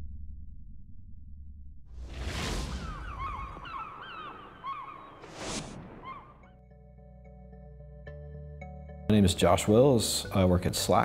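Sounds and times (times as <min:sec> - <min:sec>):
low rumble: 0:00.0 - 0:03.9
whoosh: 0:01.9 - 0:04.4, 0:05.1 - 0:06.1
bird cries gliding down: 0:02.1 - 0:06.6.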